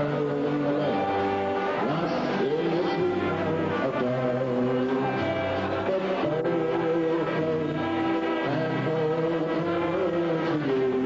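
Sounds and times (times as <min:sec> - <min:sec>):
big band playing held notes: 0:00.0 - 0:11.0.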